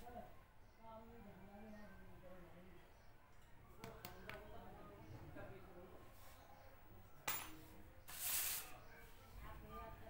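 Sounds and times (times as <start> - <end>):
paper scraping on cement floor: 8.1 - 8.7.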